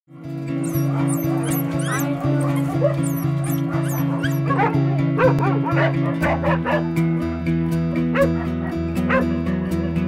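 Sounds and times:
dogs whining: 0.6 - 6.9.

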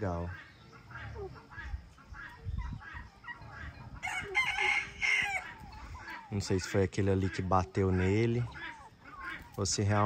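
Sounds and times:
faint bird calls: 0.0 - 10.0
rooster crowing: 4.0 - 5.9.

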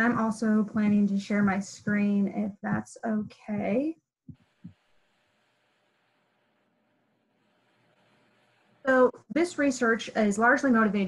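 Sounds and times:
soft low thumps: 0.0 - 4.9.

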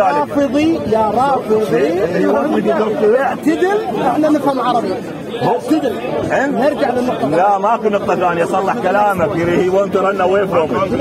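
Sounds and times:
crowd chatter: 0.0 - 11.0
men arguing: 0.0 - 11.0.

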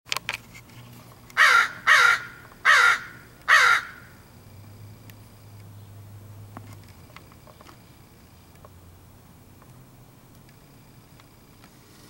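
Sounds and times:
crow cawing: 1.4 - 4.2.

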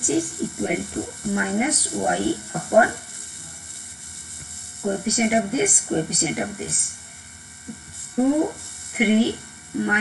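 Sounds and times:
faint hum: 0.0 - 10.0.

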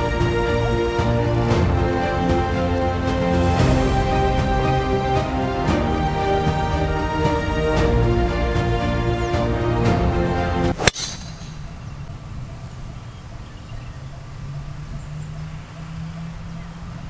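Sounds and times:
background music: 0.0 - 13.0
golf ball struck by driver: 10.7 - 11.7.

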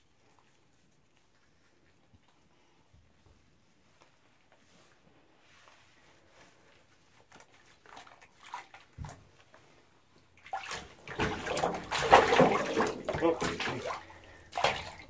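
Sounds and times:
bathwater sloshing and splashing: 4.6 - 15.0.

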